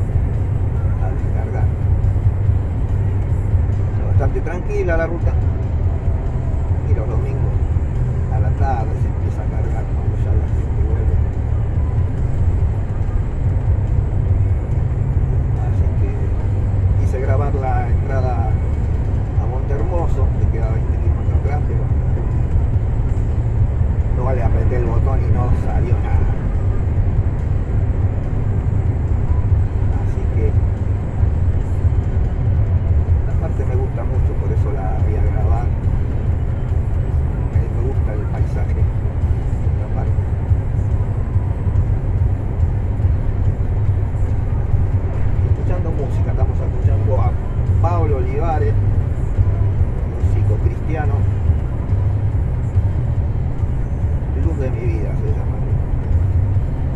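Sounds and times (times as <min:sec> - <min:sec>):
truck engine and road rumble: 0:00.0 - 0:56.9.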